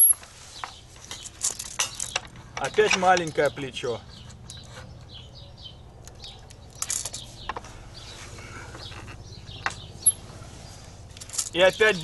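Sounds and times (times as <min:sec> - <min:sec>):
steel clinks and scrapes: 0:00.0 - 0:02.3, 0:10.0 - 0:10.3.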